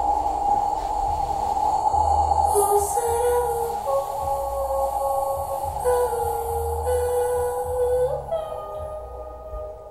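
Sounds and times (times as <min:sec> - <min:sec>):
music through a speaker: 0:00.0 - 0:09.9
steady deep bass: 0:00.0 - 0:09.9.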